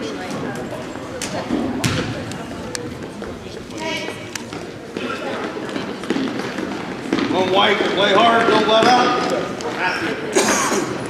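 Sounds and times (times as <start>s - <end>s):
people talking in echoing gym: 0.0s - 11.0s.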